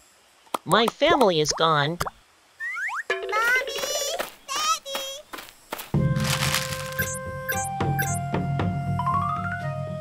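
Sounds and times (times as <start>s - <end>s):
cartoon background music: 6.0s - 10.0s
crackling sound effect: 6.2s - 7.2s.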